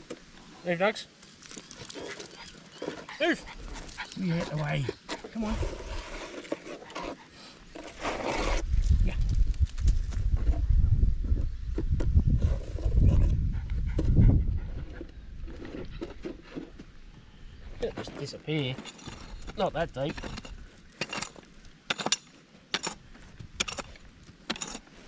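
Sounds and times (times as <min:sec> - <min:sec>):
dog sniffing and panting: 0:01.5 - 0:07.7, 0:13.0 - 0:16.7.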